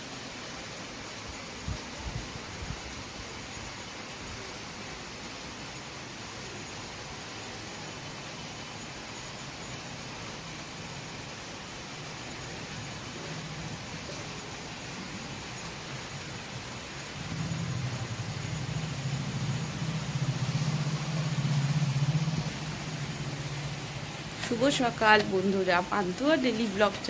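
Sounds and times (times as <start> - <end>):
steady rainfall: 0.0 - 27.0.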